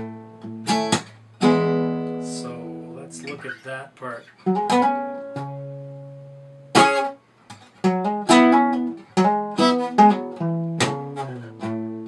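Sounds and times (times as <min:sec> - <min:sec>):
fingerstyle acoustic guitar: 0:00.0 - 0:12.0
percussive slap on guitar strings: 0:00.8 - 0:01.2, 0:10.7 - 0:11.8.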